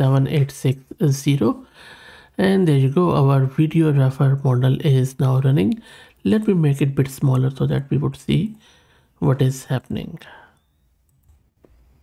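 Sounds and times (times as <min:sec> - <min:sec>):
computer mouse clicks: 0:11.0 - 0:11.8.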